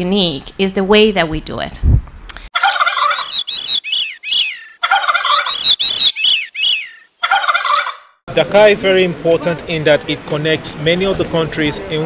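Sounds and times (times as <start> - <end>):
bird calls: 2.6 - 8.2.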